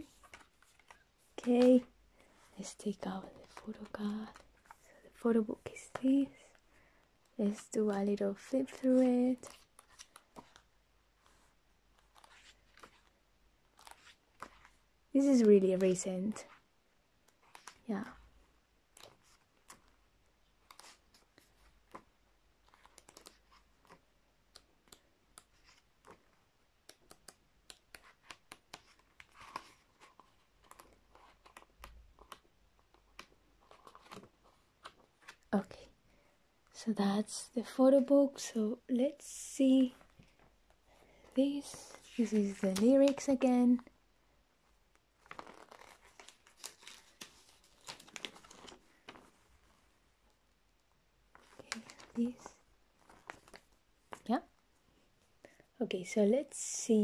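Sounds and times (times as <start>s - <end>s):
paper crinkling: 0.0s - 4.8s, 8.7s - 11.4s, 20.6s - 35.5s, 45.2s - 49.8s, 51.3s - 54.3s
photo book pages turning: 0.0s - 4.8s, 7.5s - 14.8s, 17.2s - 17.8s, 18.9s - 35.5s, 41.2s - 43.5s, 44.9s - 49.8s, 51.3s - 54.3s.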